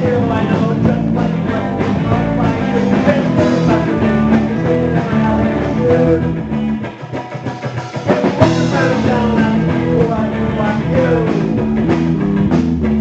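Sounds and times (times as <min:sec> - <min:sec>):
live rock band playing: 0:00.0 - 0:13.0.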